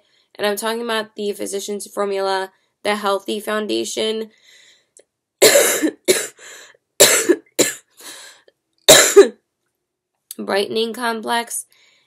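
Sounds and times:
woman coughing: 0:05.4 - 0:06.4, 0:07.0 - 0:08.0, 0:08.9 - 0:09.4.

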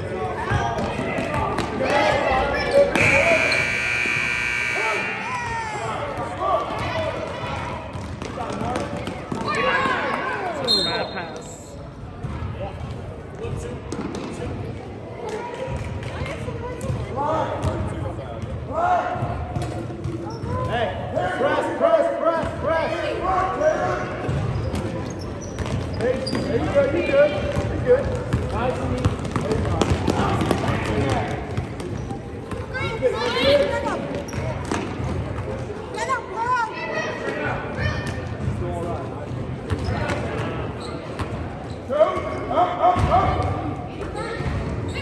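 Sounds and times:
voices calling out: 0:02.7 - 0:05.9.

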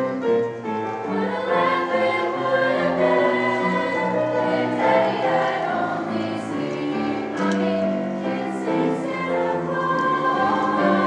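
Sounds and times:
women's choir singing in harmony: 0:01.0 - 0:11.0.

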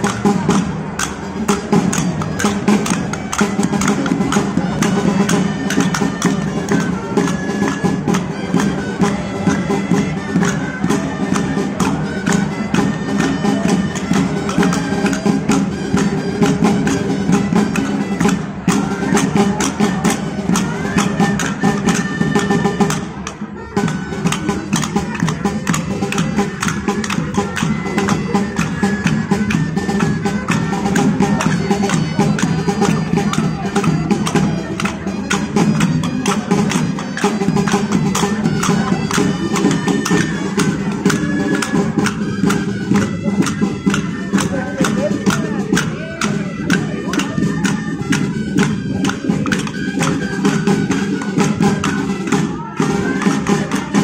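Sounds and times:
percussion beat: 0:00.0 - 0:54.0
wind instrument melody: 0:00.0 - 0:54.0.

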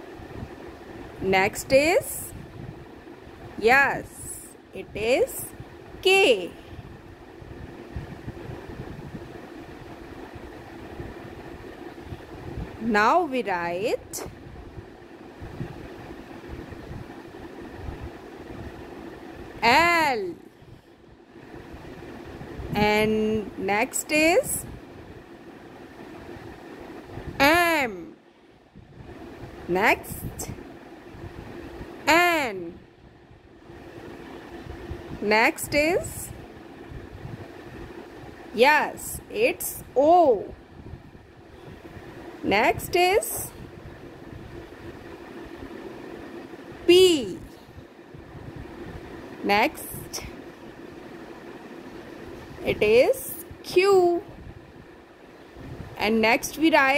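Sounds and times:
background hum and hiss: 0:00.0 - 0:56.9.

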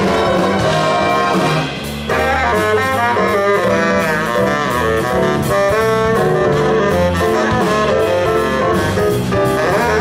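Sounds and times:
jazz big band playing: 0:00.0 - 0:10.0.

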